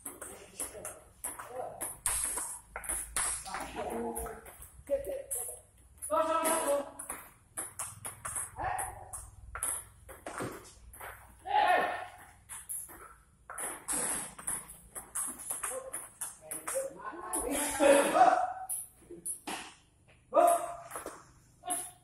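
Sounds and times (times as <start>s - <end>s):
table tennis ball clicking: 7.0s - 10.3s.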